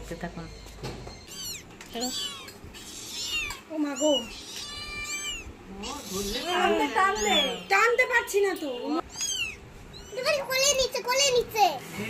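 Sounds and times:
cat meowing: 0:00.4 - 0:10.5.

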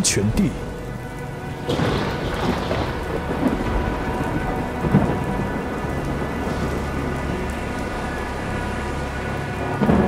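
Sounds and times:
heavy rain pouring: 0:00.0 - 0:10.0
thunder rumbling: 0:00.5 - 0:10.0
sharp thunder crack: 0:01.6 - 0:07.3.

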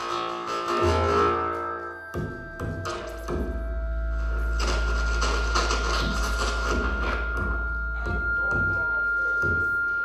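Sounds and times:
sustained high tone: 0:01.8 - 0:10.0
deep bass drone: 0:02.0 - 0:10.0
noisy texture: 0:02.1 - 0:10.0.

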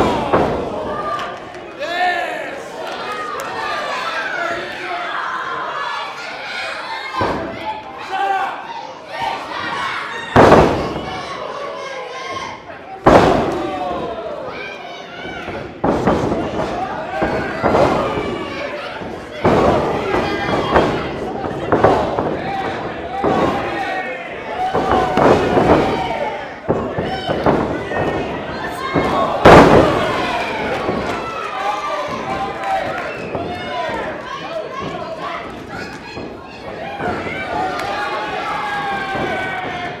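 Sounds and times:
heavy thuds of wrestlers: 0:00.0 - 0:01.2, 0:10.4 - 0:11.3, 0:13.1 - 0:14.1, 0:15.2 - 0:31.4, 0:32.0 - 0:40.0
crowd shouting and cheering: 0:00.0 - 0:40.0.

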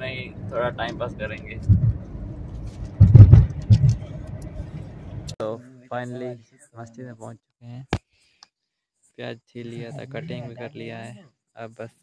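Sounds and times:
car cabin rumble: 0:00.0 - 0:05.4
loud low thumps: 0:00.9 - 0:05.3.

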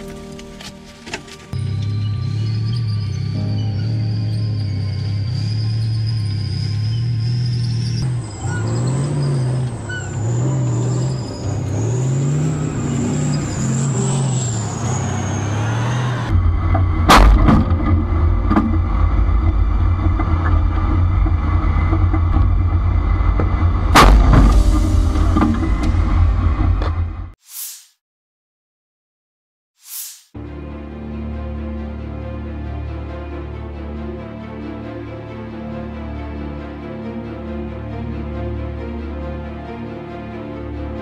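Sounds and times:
music: 0:00.0 - 0:06.0, 0:10.3 - 0:11.8, 0:17.2 - 0:21.4, 0:23.9 - 0:26.8, 0:30.4 - 0:41.0
tank engine rumble: 0:00.0 - 0:27.3.

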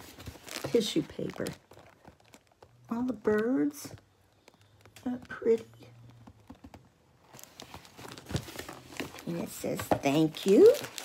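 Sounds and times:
tissue paper rustling and crinkling: 0:00.0 - 0:03.9, 0:07.2 - 0:11.0.

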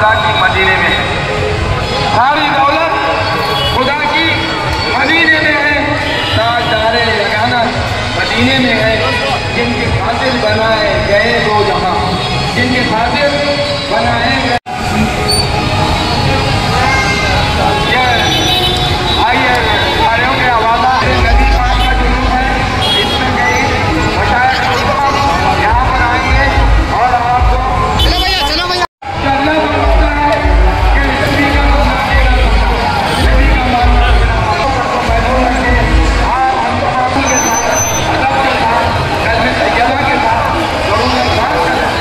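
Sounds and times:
traffic noise: 0:00.0 - 0:42.0
people talking: 0:16.3 - 0:18.5, 0:19.2 - 0:42.0.

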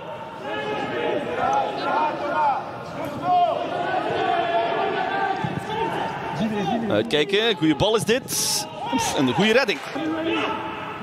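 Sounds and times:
players shouting echoing: 0:00.0 - 0:11.0.

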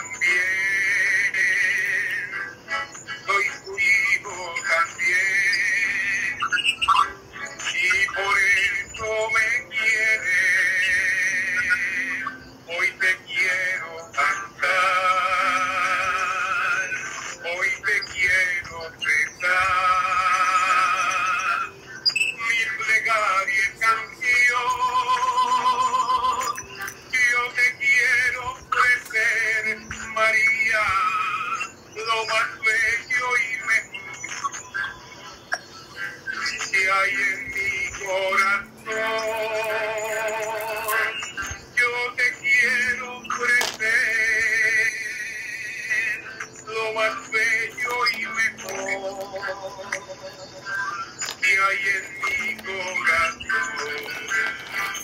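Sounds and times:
man singing a hymn: 0:00.0 - 0:21.8, 0:22.4 - 0:34.4, 0:36.0 - 0:55.0.

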